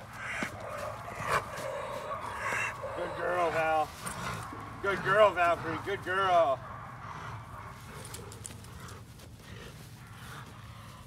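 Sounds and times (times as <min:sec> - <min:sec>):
small clicks and scuffs: 0:00.1 - 0:02.9, 0:07.6 - 0:11.0
dog growling low and rough: 0:00.4 - 0:11.0.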